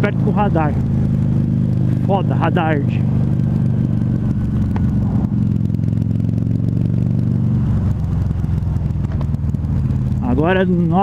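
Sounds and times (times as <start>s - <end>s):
motorcycle engine running: 0.0s - 11.0s.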